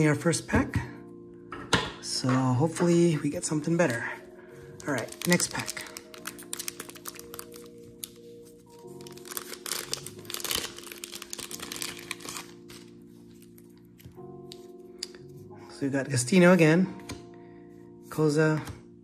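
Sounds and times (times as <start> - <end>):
soft background music: 0.0 - 19.0
foil wrapper crinkling and tearing: 4.7 - 14.2.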